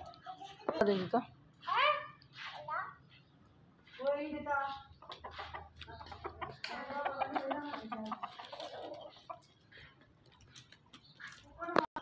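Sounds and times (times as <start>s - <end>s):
chickens clucking: 2.2s - 12.0s.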